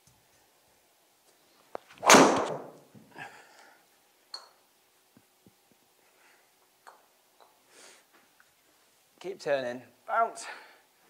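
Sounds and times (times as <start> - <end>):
golf club striking ball: 2.0 - 2.8.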